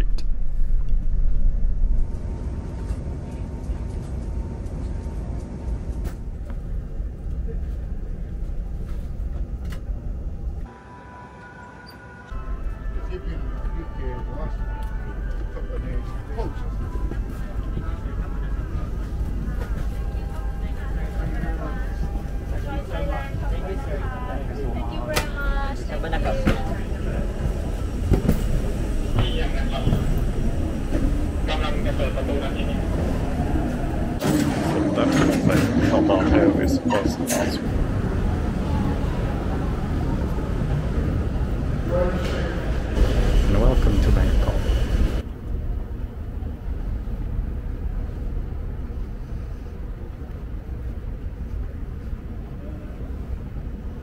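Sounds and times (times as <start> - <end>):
steady low rumble: 0.0 - 10.7, 12.3 - 54.0
muffled voices: 12.7 - 45.2.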